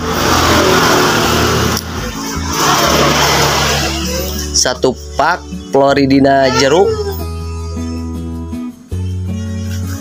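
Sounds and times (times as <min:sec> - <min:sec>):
vehicle passing on road: 0:00.0 - 0:04.6
background music: 0:00.0 - 0:10.0.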